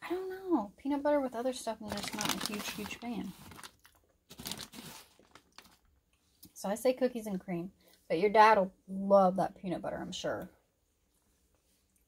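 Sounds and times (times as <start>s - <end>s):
plastic snack bag crinkling: 1.8s - 6.0s.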